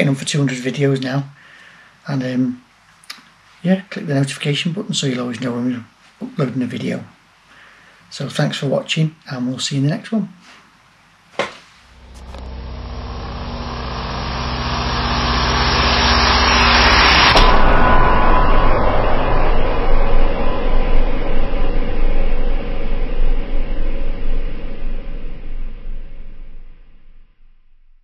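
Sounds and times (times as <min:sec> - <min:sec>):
loud rough rumble: 0:11.9 - 0:27.2
rising whoosh to a hit: 0:11.9 - 0:27.5.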